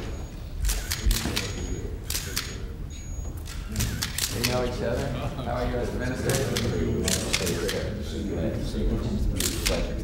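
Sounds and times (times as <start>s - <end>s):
camera shutters clicking: 0.6s - 2.6s, 3.4s - 4.7s, 6.2s - 7.9s, 9.4s - 9.9s
murmur of voices: 3.5s - 10.0s.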